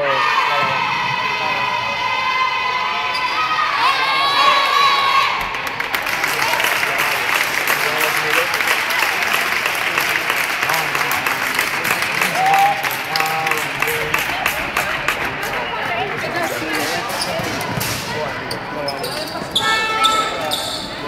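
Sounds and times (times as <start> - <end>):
cheering and clapping: 3.6 - 16.8.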